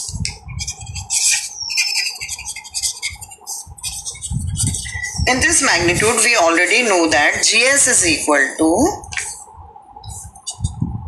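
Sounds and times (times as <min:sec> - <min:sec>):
marker scratching and squeaking on paper: 0:00.0 - 0:06.4, 0:10.0 - 0:10.8.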